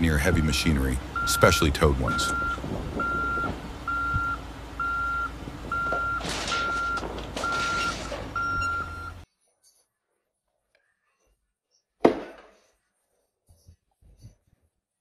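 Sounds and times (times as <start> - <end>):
diesel engine running: 0.0 - 9.2
reversing alarm beeps: 0.2 - 9.2.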